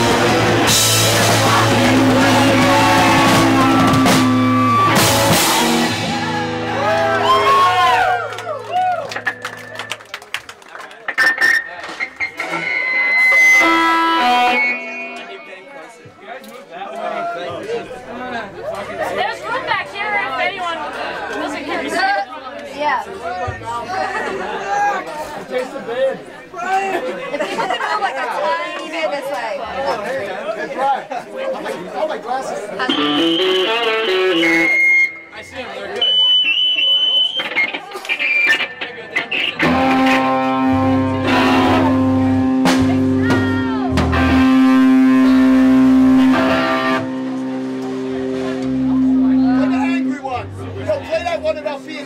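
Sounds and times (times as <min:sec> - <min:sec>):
electric guitars ringing: 0:00.0 - 0:10.2, 0:11.1 - 0:16.0, 0:32.8 - 0:52.0
instrument squeals and clicks: 0:11.1 - 0:15.4, 0:32.9 - 0:40.4.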